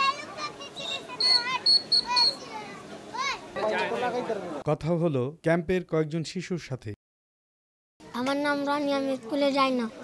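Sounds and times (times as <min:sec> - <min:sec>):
children chattering and calling: 0:00.0 - 0:04.6, 0:08.0 - 0:10.0.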